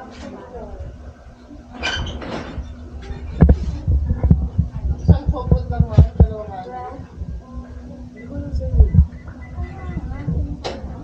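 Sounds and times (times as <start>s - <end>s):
indistinct voices: 0.0s - 11.0s
low thumps: 2.5s - 11.0s.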